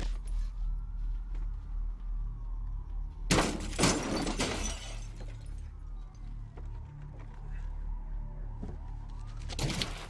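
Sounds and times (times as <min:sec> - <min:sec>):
glass shattering: 0:03.3 - 0:05.5.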